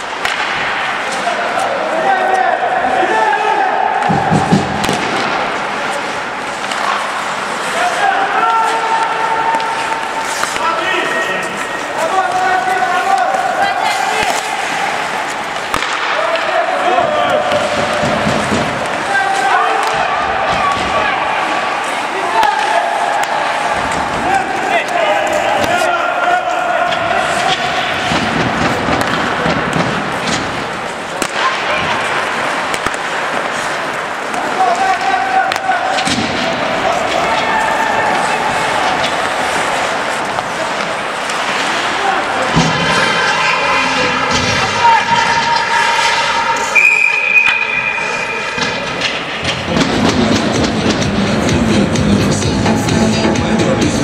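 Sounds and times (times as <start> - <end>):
sticks and puck clacking boards: 0.0 - 2.4, 3.9 - 53.1
players shouting: 0.0 - 54.0
skates on ice: 4.0 - 53.0
music over speakers: 50.5 - 54.0.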